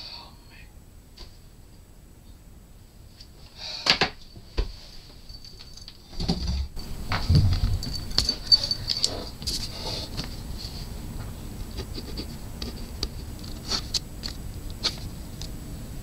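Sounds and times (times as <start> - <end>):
sharp knocks: 7.1 - 8.5
marker scratching on paper: 11.7 - 14.0.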